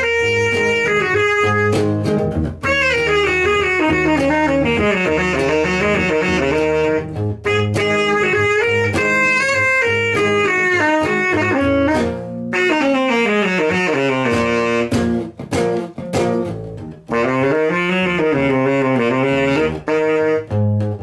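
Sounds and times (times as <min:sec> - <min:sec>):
bass guitar: 0:00.0 - 0:21.0
saxophone melody: 0:00.0 - 0:21.0.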